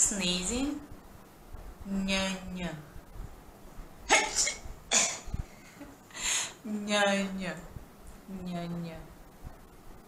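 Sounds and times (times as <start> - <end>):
woman imitating a sneeze: 4.1 - 5.3.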